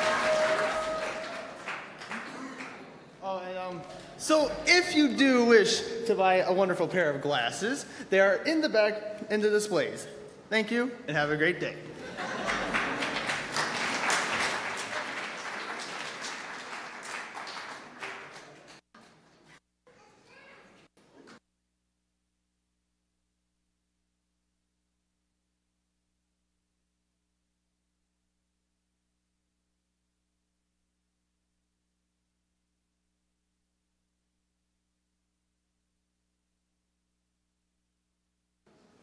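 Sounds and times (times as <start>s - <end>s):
audience applause: 0.0s - 3.0s, 12.1s - 19.2s.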